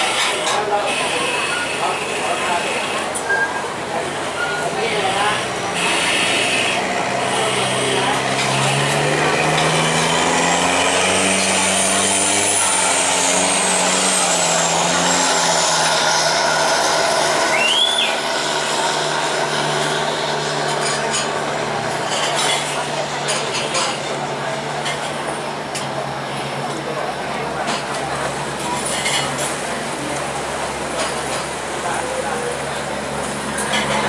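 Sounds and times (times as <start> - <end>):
engine humming: 0.0 - 34.0
faint high whistle: 17.4 - 18.3.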